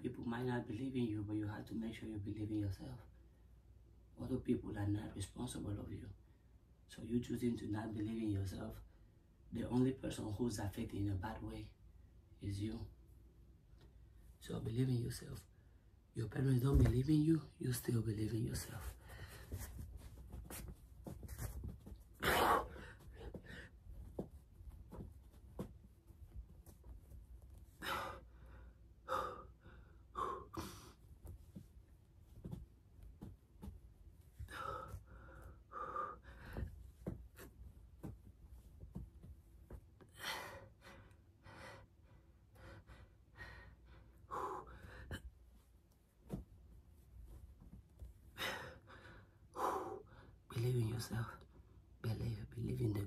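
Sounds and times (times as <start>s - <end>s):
person breathing hard and gasping: 22.2s - 23.8s, 27.7s - 31.1s, 34.4s - 37.6s, 40.0s - 45.4s, 48.3s - 50.4s.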